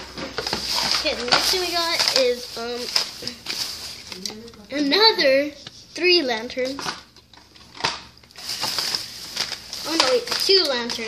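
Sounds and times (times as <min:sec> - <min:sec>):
plastic bag rustling: 0:00.0 - 0:05.5, 0:06.1 - 0:11.0.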